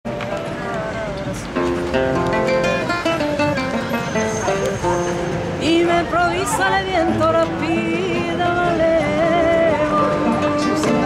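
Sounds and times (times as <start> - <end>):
classical guitar strumming chords: 0.1 - 11.0.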